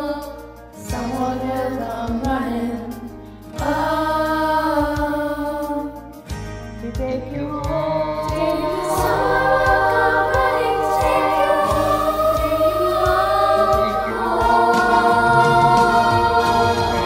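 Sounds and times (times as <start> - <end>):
chorus singing held chords: 3.5 - 6.2, 7.4 - 17.0.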